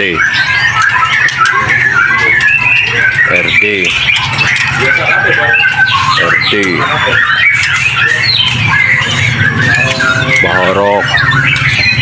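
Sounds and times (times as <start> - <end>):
birds chirping and calling: 0.0 - 12.0.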